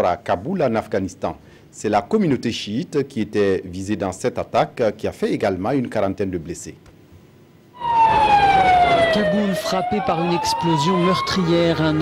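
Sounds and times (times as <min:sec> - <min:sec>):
emergency siren wailing: 0:07.8 - 0:12.0
street noise: 0:07.8 - 0:12.0.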